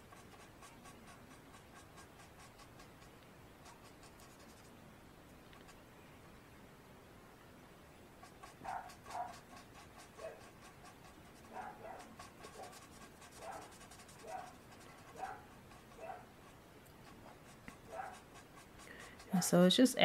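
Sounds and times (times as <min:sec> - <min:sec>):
marker scratching on cardstock: 0:00.0 - 0:04.7, 0:08.2 - 0:19.8.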